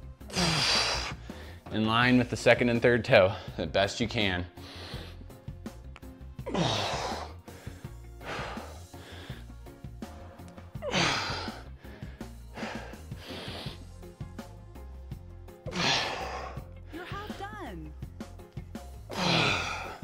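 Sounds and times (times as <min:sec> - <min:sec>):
background music with low beat: 0:00.0 - 0:20.0
man exhaling forcefully: 0:00.3 - 0:01.3, 0:15.7 - 0:16.6, 0:19.1 - 0:20.0.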